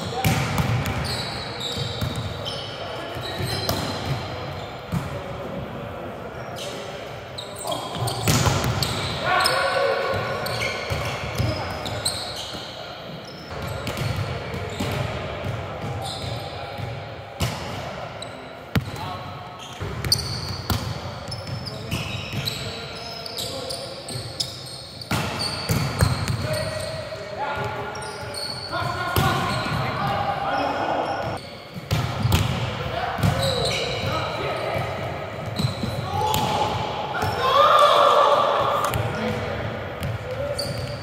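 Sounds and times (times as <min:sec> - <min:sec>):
players shouting: 0:09.1 - 0:10.4, 0:36.0 - 0:38.9.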